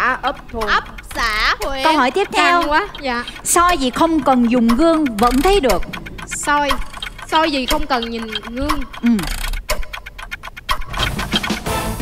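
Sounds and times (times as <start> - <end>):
countdown timer ticking: 0.0 - 12.0.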